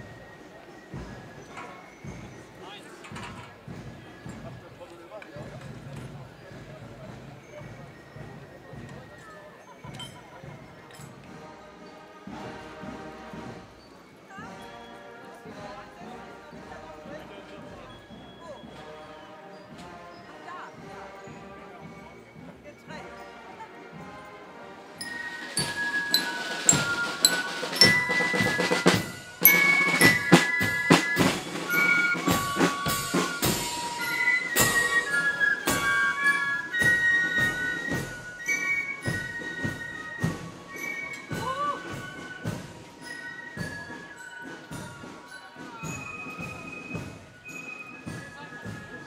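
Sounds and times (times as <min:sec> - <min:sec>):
fife and drum band marching: 0:00.0 - 0:49.0
high fife melody: 0:25.0 - 0:37.0.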